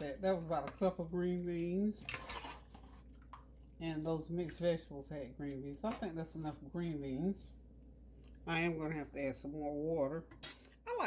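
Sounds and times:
metal spoon stirring in pot: 0.0 - 3.7
liquid sloshing and dripping: 1.8 - 8.6.

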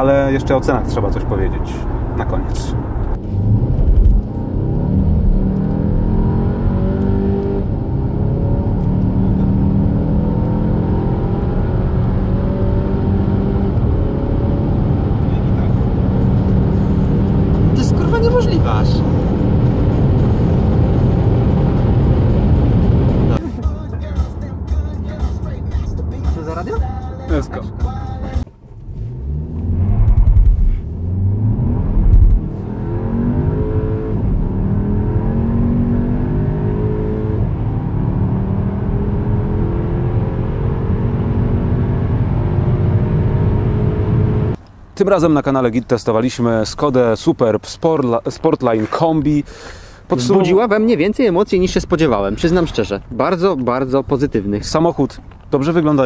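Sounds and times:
car engine accelerating: 0.0 - 44.6.

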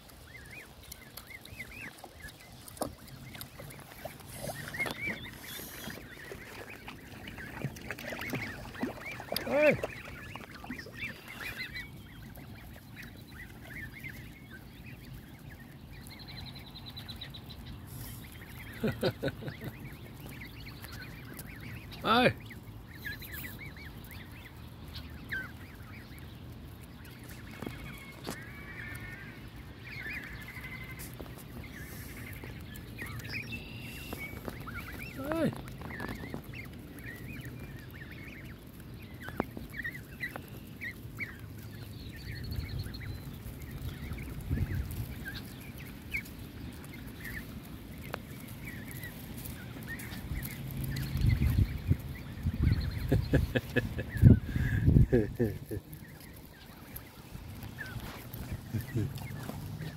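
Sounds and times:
goslings peeping: 0.0 - 59.9
goose call: 3.8 - 11.9.

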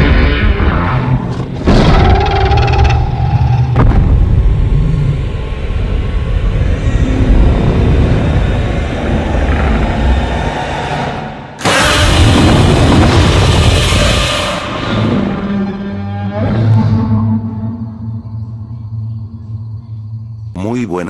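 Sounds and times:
deep heavy rumbling: 0.0 - 20.5.

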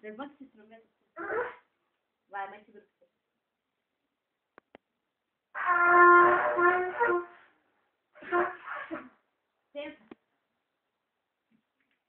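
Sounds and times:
child blowing a trumpet: 1.2 - 1.7, 5.5 - 7.6, 8.2 - 9.2.

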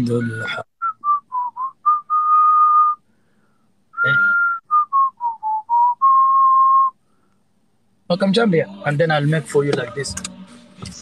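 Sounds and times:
person whistling a tune: 0.8 - 3.0, 4.0 - 7.0.

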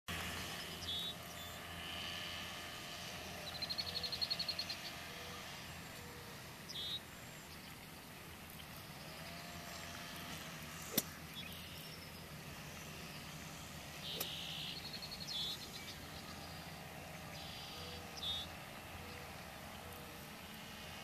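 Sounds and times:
bird chirp: 0.3 - 1.7, 3.4 - 8.1, 11.2 - 20.2
bird trilling: 6.1 - 7.0, 14.0 - 16.6.

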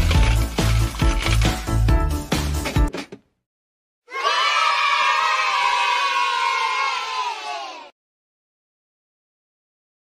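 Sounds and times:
children cheering and shouting: 4.1 - 8.0.

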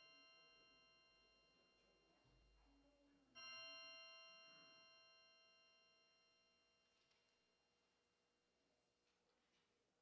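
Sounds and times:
bell ringing: 3.4 - 6.4.

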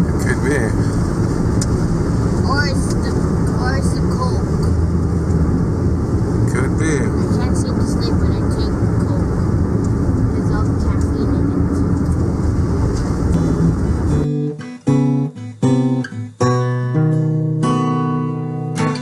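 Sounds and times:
tyres on wet road: 0.0 - 14.2
car engine drone: 0.0 - 14.5.

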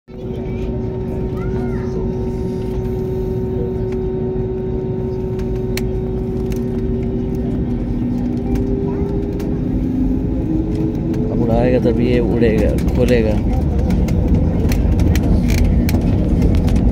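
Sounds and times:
jet engines idling hum: 0.1 - 16.9.

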